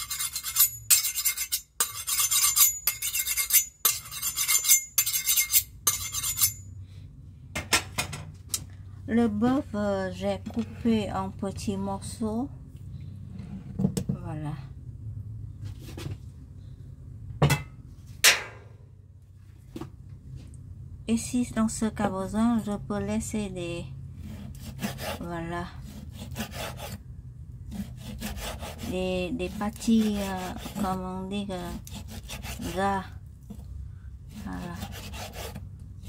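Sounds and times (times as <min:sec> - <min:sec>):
steady low hum: 0:00.0 - 0:36.0.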